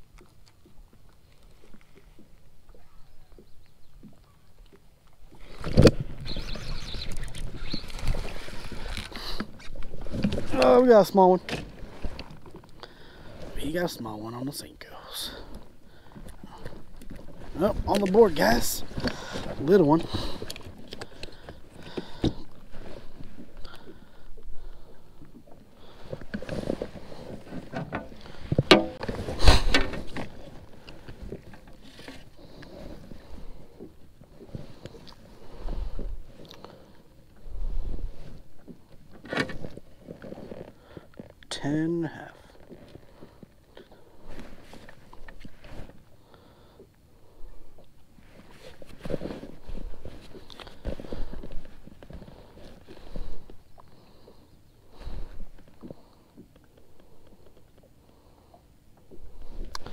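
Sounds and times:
knocks and bumps on plastic kayak: 0:26.5 - 0:30.2
sharp knocks: 0:28.7 - 0:29.1.

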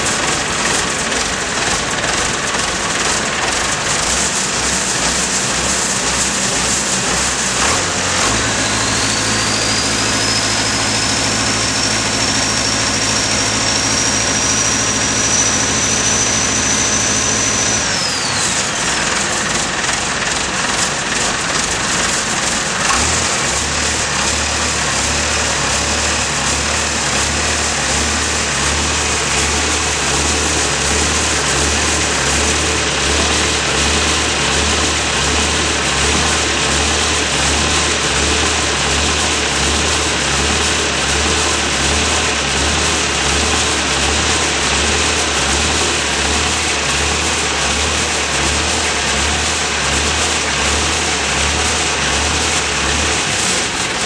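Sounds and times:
continuous rushing noise: 0:00.0 - 0:54.0
engine running steadily: 0:00.0 - 0:54.0.

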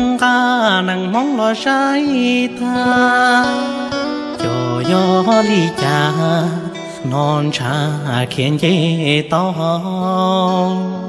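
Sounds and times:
musical backing: 0:00.0 - 0:11.0
person singing: 0:00.0 - 0:11.0.

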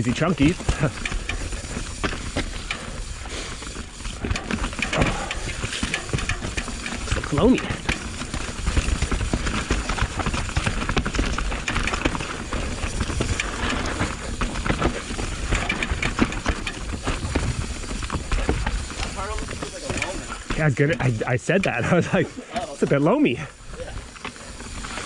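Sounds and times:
bike knocking and rattling: 0:00.0 - 0:25.0.

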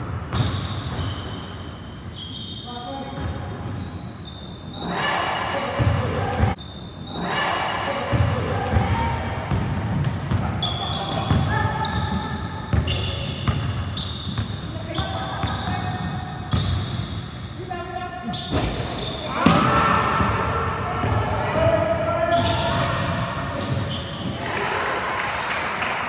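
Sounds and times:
sneaker squeaks: 0:00.0 - 0:24.4.

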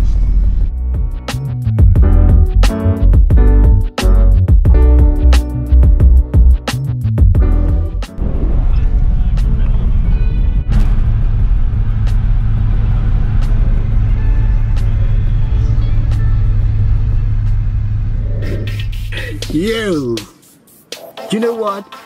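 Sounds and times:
background music: 0:00.0 - 0:08.6, 0:12.0 - 0:22.0
car engine drone: 0:08.1 - 0:19.6
road noise: 0:08.1 - 0:20.2.

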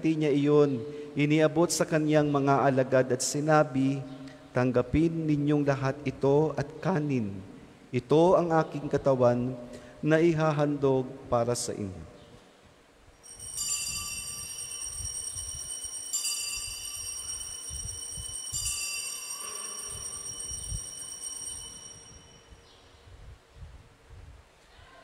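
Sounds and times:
altar bells ringing: 0:13.2 - 0:22.9.

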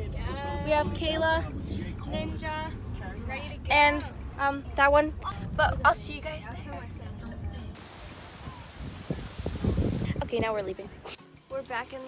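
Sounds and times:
surf hissing: 0:07.8 - 0:10.2
wind buffeting microphone: 0:07.8 - 0:11.0.

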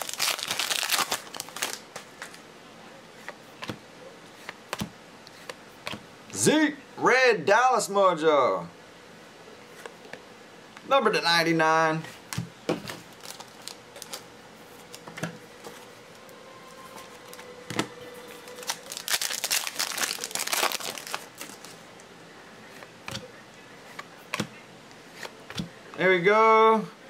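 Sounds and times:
foil wrapper crinkling and tearing: 0:00.0 - 0:02.1, 0:13.1 - 0:14.2, 0:18.5 - 0:21.8.

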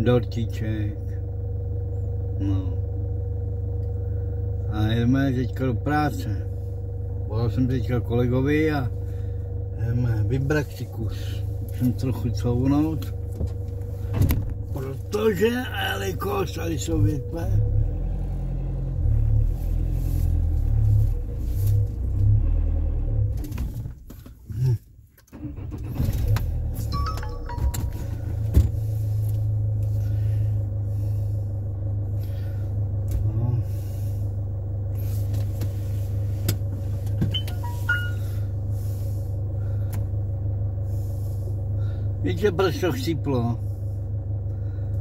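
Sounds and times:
truck engine stalling and restarting: 0:05.9 - 0:24.3, 0:25.2 - 0:45.0.

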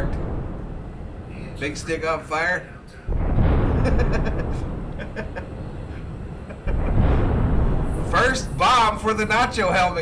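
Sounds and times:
thunder crash rumbling: 0:00.0 - 0:10.0.

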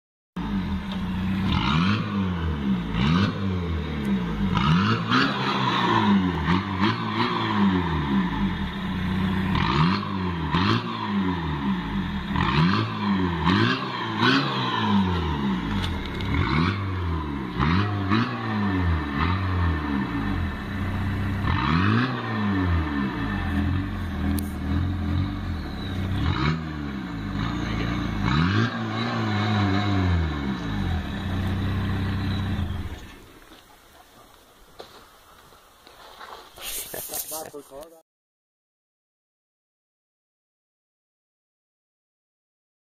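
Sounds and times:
diesel engine revving: 0:00.4 - 0:33.5.

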